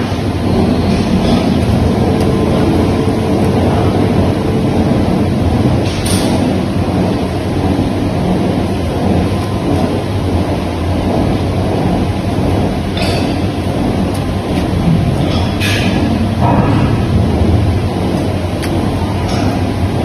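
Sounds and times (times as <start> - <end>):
machinery rumbling: 0.0 - 20.0.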